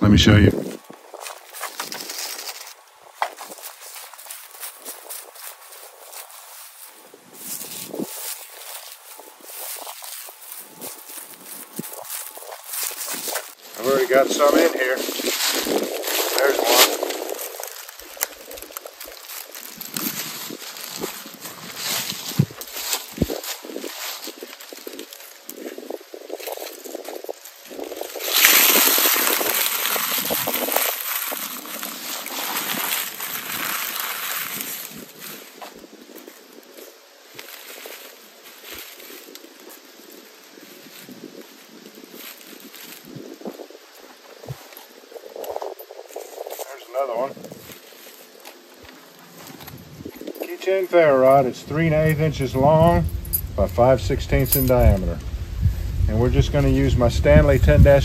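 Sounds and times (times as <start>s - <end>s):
dry leaves crumpled in hands: 0.7s - 58.0s.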